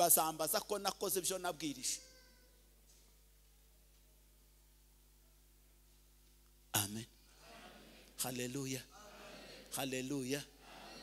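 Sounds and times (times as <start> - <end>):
man's amplified voice: 0.0 - 2.0, 6.7 - 7.2, 8.2 - 11.0
low steady hum: 0.0 - 11.0.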